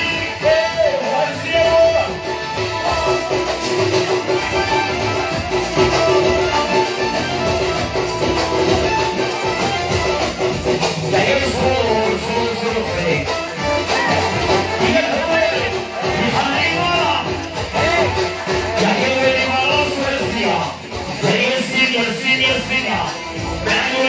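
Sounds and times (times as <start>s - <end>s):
man singing into a microphone: 0.0s - 3.9s, 10.9s - 13.4s, 14.5s - 24.0s
amplified instruments: 0.0s - 24.0s
guitar-like melody: 0.0s - 24.0s.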